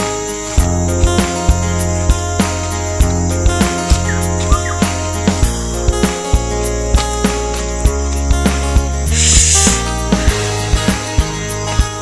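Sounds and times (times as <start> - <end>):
music with bass and beat: 0.0 - 12.0
brief rushing hiss: 9.1 - 10.4.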